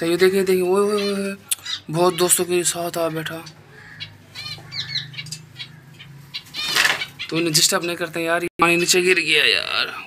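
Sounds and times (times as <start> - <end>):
finches chirping: 0.2 - 8.3.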